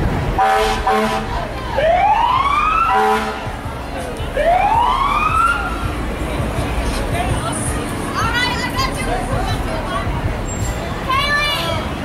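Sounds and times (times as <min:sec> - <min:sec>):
emergency vehicle siren wailing: 0:00.4 - 0:03.4, 0:04.4 - 0:05.9.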